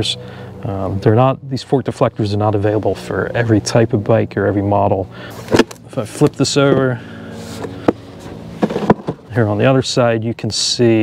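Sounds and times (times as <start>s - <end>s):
steady low hum: 0.0s - 11.0s
cardboard box being handled: 5.4s - 9.3s.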